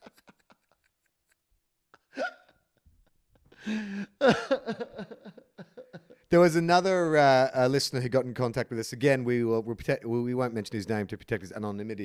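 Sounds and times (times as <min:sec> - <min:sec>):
man's hiccup-like laugh: 0:02.0 - 0:02.7.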